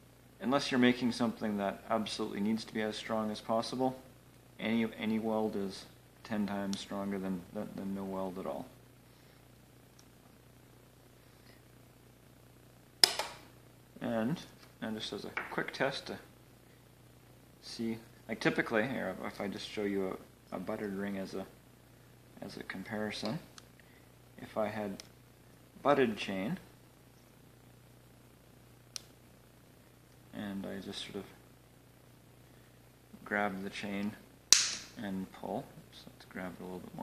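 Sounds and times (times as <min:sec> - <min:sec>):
faint steady hum: 0:00.0 - 0:37.0
welder sharp crack: 0:13.0 - 0:13.5, 0:34.5 - 0:35.0.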